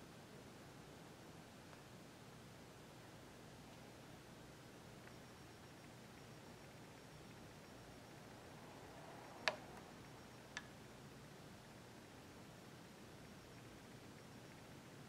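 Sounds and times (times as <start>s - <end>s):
sharp clicks: 9.4s - 9.8s.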